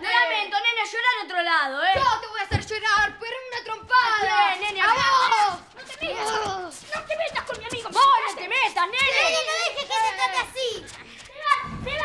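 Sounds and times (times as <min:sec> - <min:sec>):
children shouting and cheering: 0:00.0 - 0:12.0.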